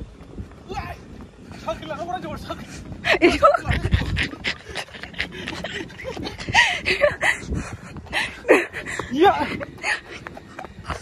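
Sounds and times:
person panting hard: 4.2s - 11.0s.

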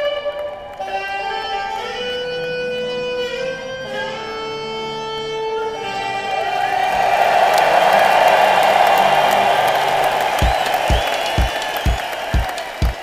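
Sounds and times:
crowd cheering and applauding: 5.8s - 13.0s
bass drum beat: 10.4s - 13.0s.

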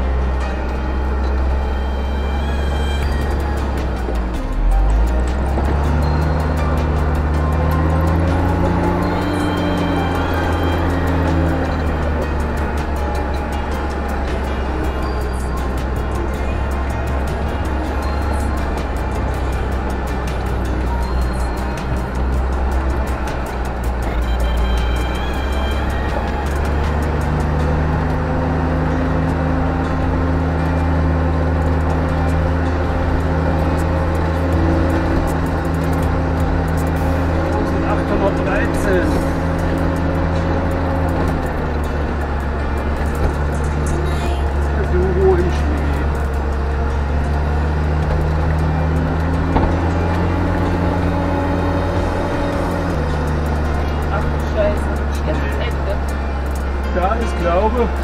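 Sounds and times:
truck diesel engine running: 0.0s - 58.0s.

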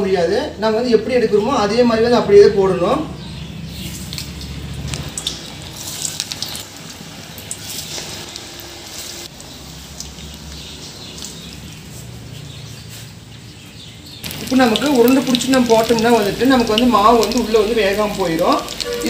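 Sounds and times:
batter deep-frying in hot oil: 3.4s - 19.0s
oil crackling and popping: 3.7s - 12.3s, 14.1s - 19.0s.

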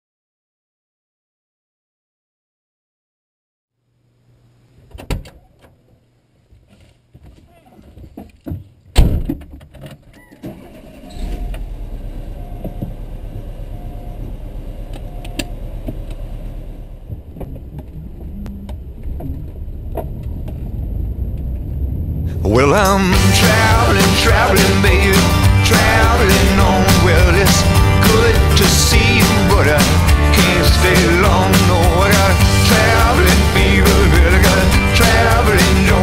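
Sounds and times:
door slamming: 9.0s - 9.5s
van engine starting and running: 10.4s - 36.0s.

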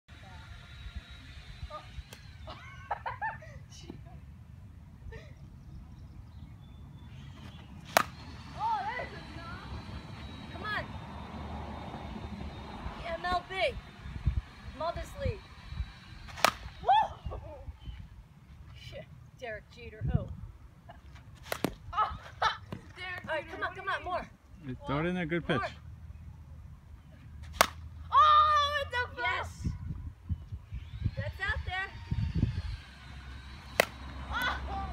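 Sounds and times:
low outdoor rumble: 0.1s - 34.9s
baseball bat hitting ball: 7.9s - 8.3s, 16.3s - 16.8s, 27.5s - 27.8s, 33.6s - 34.7s
wind rumble on microphone: 8.7s - 18.3s, 19.8s - 20.7s, 29.5s - 33.1s.

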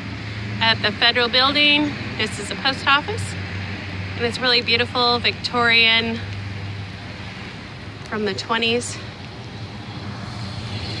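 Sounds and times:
cars driving past: 0.0s - 11.0s.

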